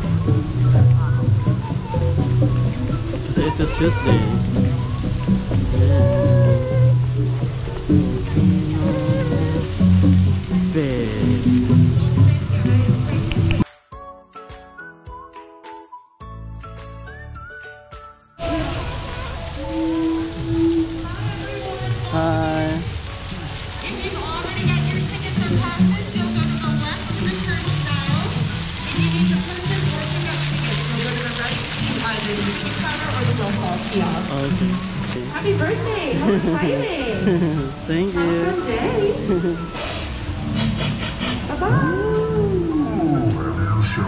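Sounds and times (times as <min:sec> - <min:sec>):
fountain water splashing: 0:00.0 - 0:13.6, 0:18.4 - 0:44.0
music playing: 0:00.0 - 0:44.0
voices: 0:00.8 - 0:09.8, 0:18.4 - 0:22.9, 0:23.8 - 0:28.4, 0:29.0 - 0:39.7
voice holding long note: 0:05.7 - 0:07.2, 0:08.0 - 0:09.8, 0:18.4 - 0:22.8.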